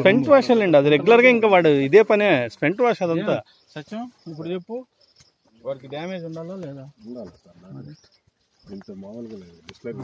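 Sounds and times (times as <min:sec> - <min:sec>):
man speaking: 0:00.0 - 0:04.9
insects chirping: 0:00.0 - 0:10.0.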